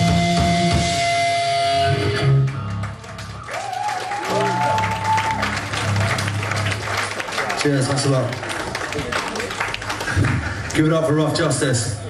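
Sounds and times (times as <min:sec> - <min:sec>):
guitar noise with sliding pitch: 0:00.0 - 0:02.8
punk band playing live: 0:00.0 - 0:07.1
people clapping: 0:02.4 - 0:11.7.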